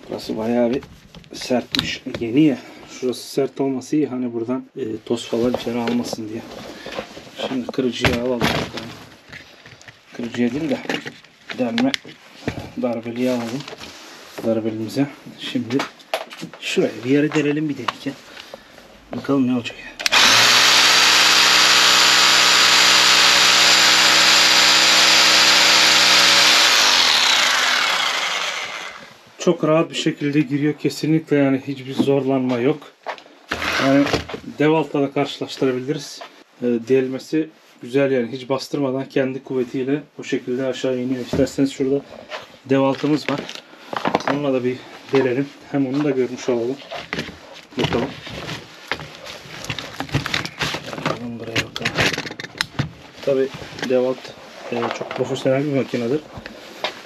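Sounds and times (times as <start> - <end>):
hammer drill drilling into concrete: 20.0 - 29.2.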